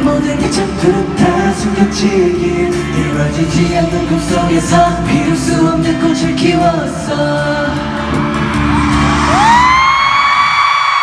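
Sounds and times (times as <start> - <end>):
band music: 0.0 - 10.6
stadium crowd screaming: 7.8 - 11.0.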